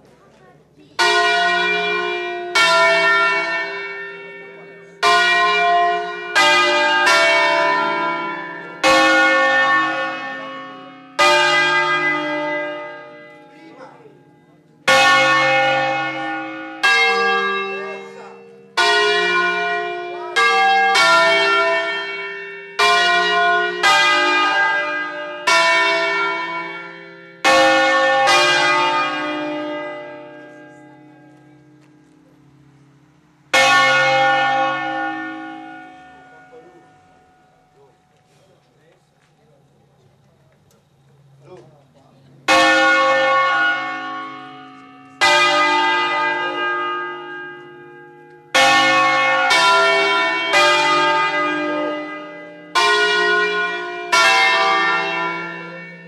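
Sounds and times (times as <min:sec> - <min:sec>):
church bells ringing: 0:00.0 - 0:56.0.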